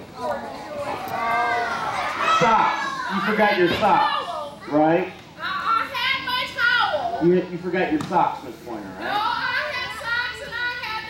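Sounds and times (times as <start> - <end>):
children calling out: 0.4 - 4.7, 5.4 - 7.2.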